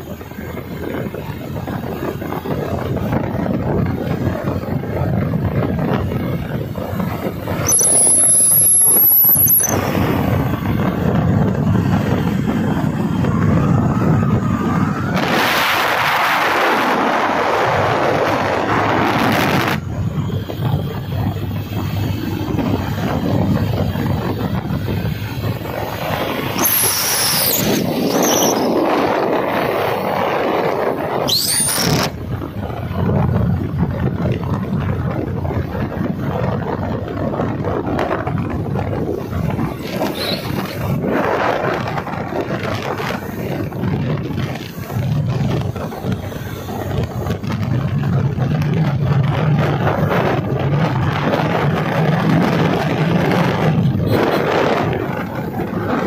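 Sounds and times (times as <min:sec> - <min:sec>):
motorcycle engine and road noise: 0:00.0 - 0:56.0
wind rushing over microphone: 0:00.0 - 0:56.0
high squealing glides: 0:07.3 - 0:10.3, 0:25.8 - 0:30.0, 0:31.0 - 0:32.2, 0:39.6 - 0:41.0.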